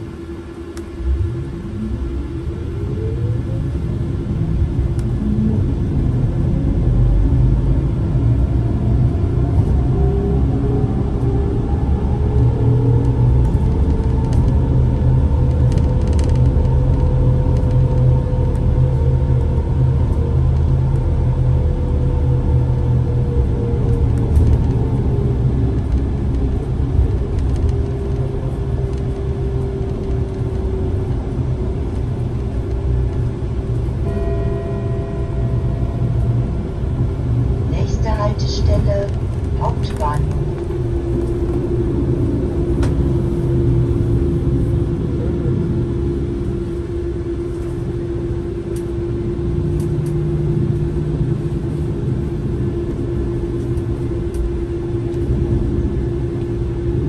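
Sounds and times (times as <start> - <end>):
low rumble of bus ride: 0.0 - 57.0.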